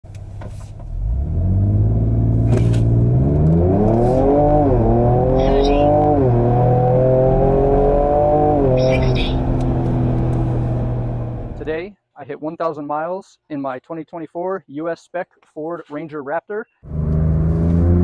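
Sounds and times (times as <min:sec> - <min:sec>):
engine accelerating with upshifts: 0:00.1 - 0:11.7, 0:16.8 - 0:18.0.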